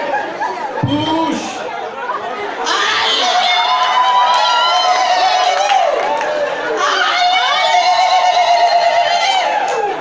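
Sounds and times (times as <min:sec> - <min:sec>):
cheering: 0:00.0 - 0:10.0.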